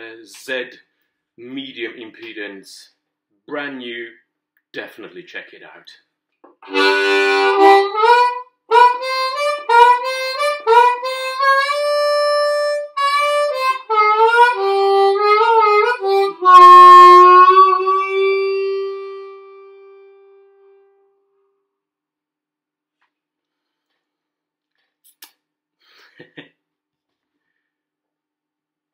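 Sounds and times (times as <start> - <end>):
harmonica with bent notes: 6.6 - 21.0.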